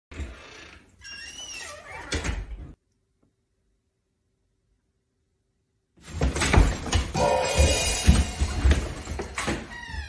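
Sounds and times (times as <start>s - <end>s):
door creaking open: 0.1s - 2.8s, 8.6s - 10.0s.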